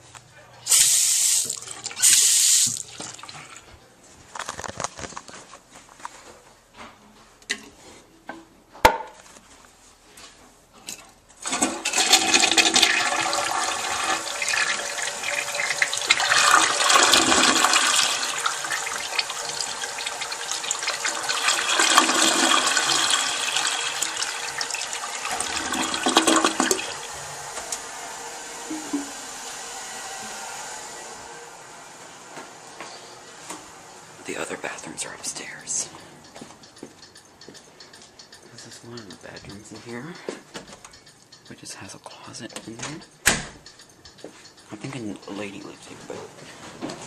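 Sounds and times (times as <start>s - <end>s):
toilet flushing: 0.7s - 3.6s, 11.4s - 32.5s.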